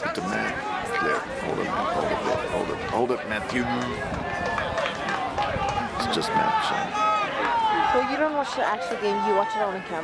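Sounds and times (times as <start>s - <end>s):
voices shouting: 0.0s - 10.0s.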